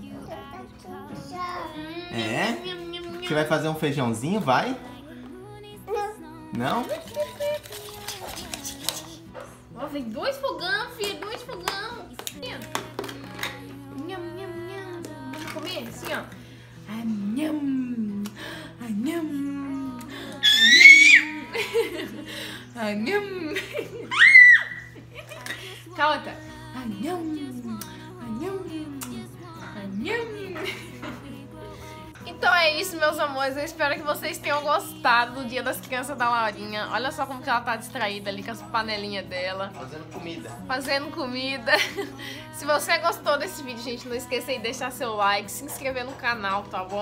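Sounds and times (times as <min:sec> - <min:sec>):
toddler sing-song vocalizing: 0:00.0 - 0:03.4, 0:04.9 - 0:09.5, 0:19.1 - 0:21.6
faint background music: 0:00.0 - 0:47.0
toddler squealing: 0:20.4 - 0:21.5, 0:24.1 - 0:24.9.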